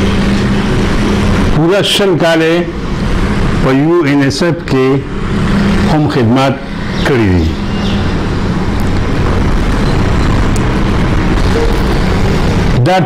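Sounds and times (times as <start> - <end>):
loud steady noise with low hum: 0.0 - 13.0
man's voice: 12.8 - 13.0.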